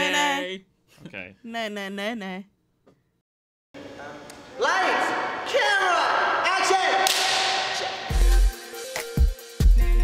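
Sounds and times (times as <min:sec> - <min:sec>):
young person calling out: 0:00.0 - 0:00.6.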